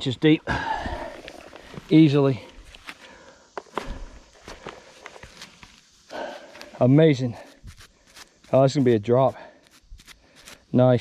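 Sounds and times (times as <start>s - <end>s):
footsteps crunching dry leaves: 4.5s - 10.6s.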